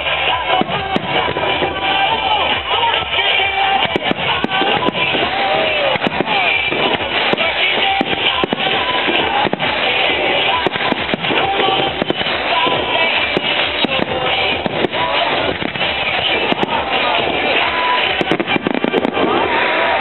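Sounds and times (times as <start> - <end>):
firework shells bursting: 0.0 - 20.0
music playing: 0.0 - 20.0.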